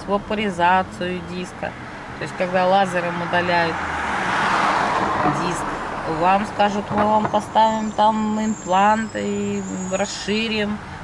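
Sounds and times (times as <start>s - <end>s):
car driving past: 1.8s - 6.2s.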